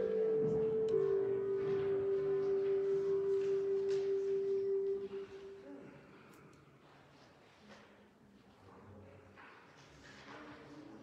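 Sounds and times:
held pure musical note: 0.0 - 5.9.

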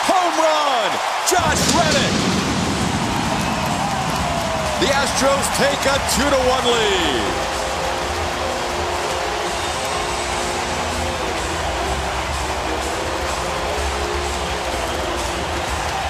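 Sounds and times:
crowd noise: 0.0 - 16.0.

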